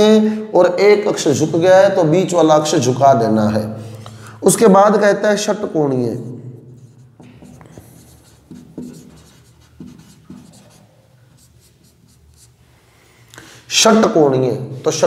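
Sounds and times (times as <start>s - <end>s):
pen writing strokes: 6.8s - 12.6s.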